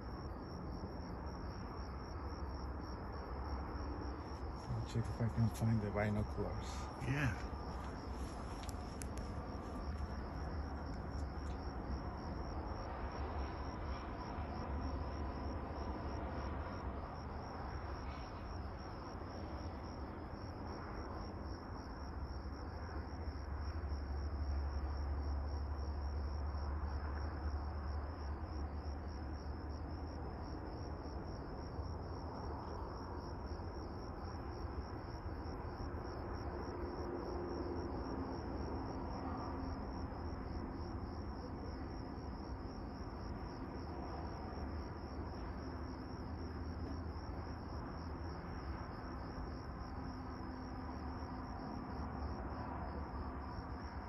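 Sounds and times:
crickets chirping: 0.0 - 54.0.

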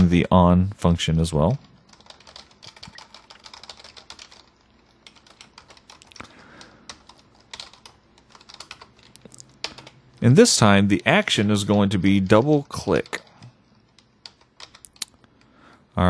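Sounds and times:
keyboard typing: 1.6 - 10.3, 10.9 - 15.5.

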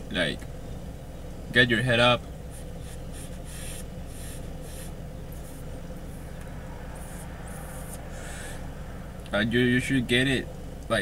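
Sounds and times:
low hum in car cabin: 0.0 - 11.0
soft hissy draws of air: 2.8 - 9.3.

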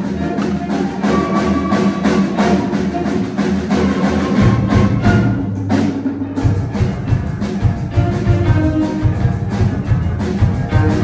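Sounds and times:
drum beats: 0.0 - 11.0.

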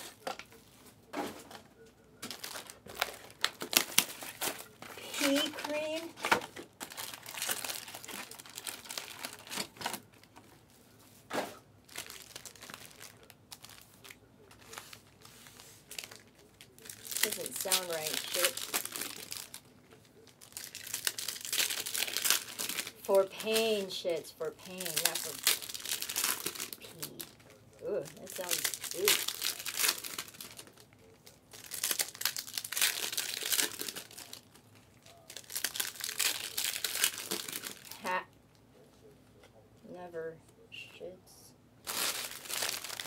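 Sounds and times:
foil wrappers crinkling and tearing: 0.0 - 10.7, 11.8 - 38.3, 41.8 - 43.0.

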